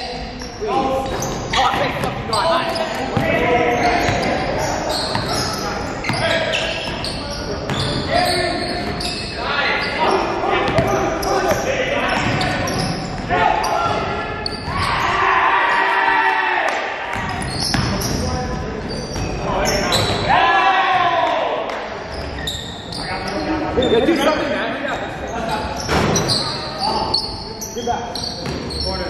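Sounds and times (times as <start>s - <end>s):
players shouting and chatting: 0.0s - 29.0s.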